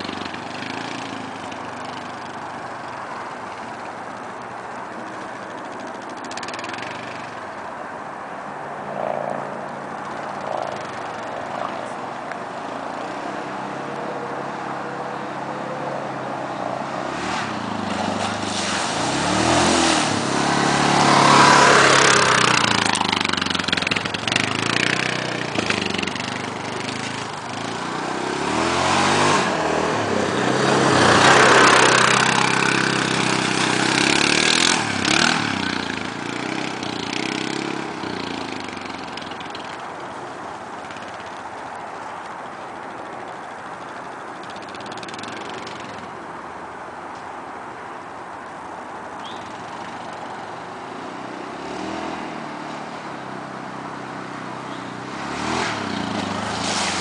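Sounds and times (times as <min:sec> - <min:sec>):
quad bike engine revving: 0:00.0 - 0:04.2, 0:04.9 - 0:07.6, 0:09.0 - 0:41.5, 0:43.3 - 0:46.1, 0:49.2 - 0:57.0.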